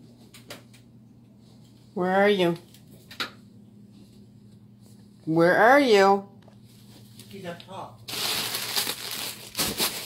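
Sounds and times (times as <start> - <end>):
plastic wrapping crinkling: 6.8 - 10.0.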